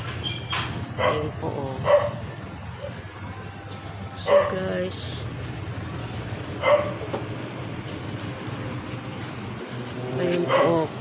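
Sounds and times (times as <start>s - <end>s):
low engine hum: 0.0s - 11.0s
dog bark: 1.0s - 2.2s, 4.2s - 4.6s, 6.6s - 7.0s, 10.4s - 10.9s.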